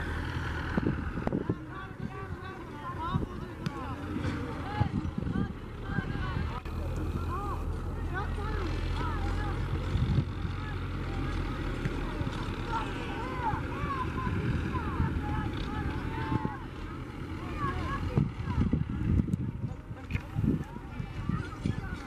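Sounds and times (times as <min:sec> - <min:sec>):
voices: 0:00.0 - 0:22.0.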